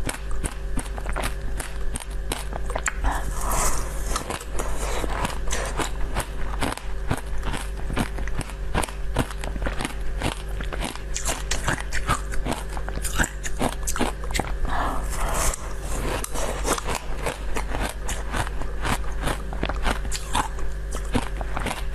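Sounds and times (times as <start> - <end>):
chewing and biting food: 0.0 - 21.9
low steady hum: 0.0 - 21.9.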